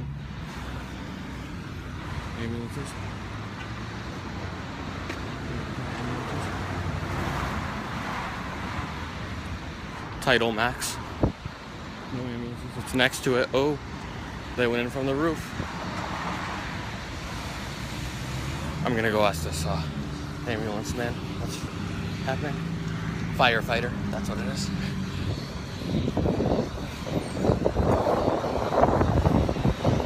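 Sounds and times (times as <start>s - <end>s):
cars passing: 0.0s - 30.0s
roadside traffic: 0.0s - 30.0s.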